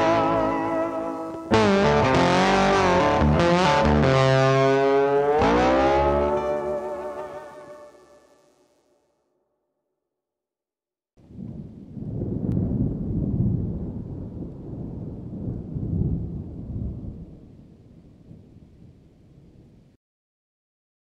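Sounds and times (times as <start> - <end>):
wind buffeting microphone: 11.3 - 19.9.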